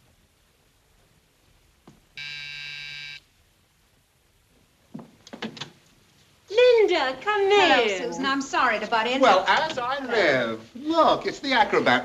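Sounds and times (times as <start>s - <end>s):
electric doorbell buzzer: 2.2s - 3.2s.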